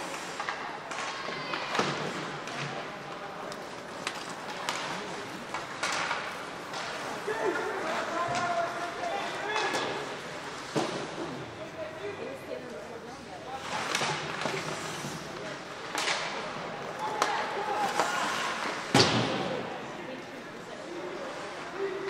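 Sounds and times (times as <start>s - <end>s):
echoing hubbub: 0.0s - 22.0s
hockey sticks and puck knocking: 0.1s - 7.0s, 15.8s - 19.4s.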